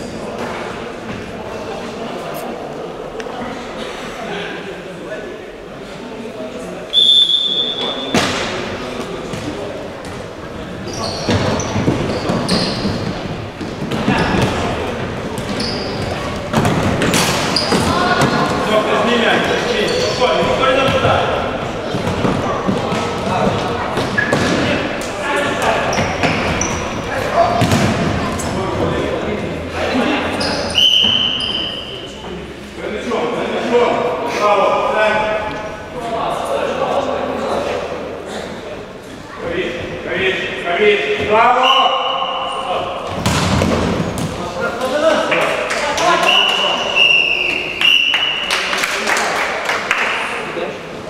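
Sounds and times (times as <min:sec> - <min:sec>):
referee's whistle blasts: 0:06.9 - 0:08.1, 0:30.6 - 0:31.9, 0:41.6 - 0:42.4, 0:46.2 - 0:48.4.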